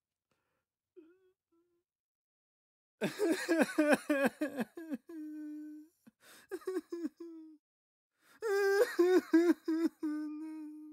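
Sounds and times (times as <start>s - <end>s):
man sobbing and wailing: 3.0s - 7.6s, 8.4s - 10.9s.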